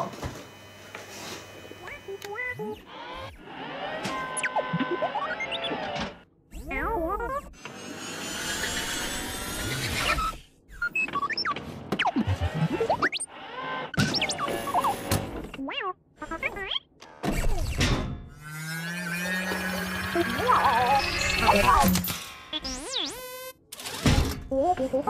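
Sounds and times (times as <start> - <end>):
electronic droid beeps and whistles: 18.7 - 21.9.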